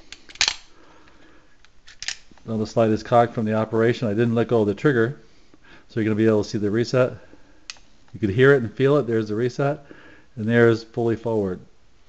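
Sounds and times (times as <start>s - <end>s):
pistol slide metallic clack: 0.0s - 0.7s, 1.8s - 2.3s.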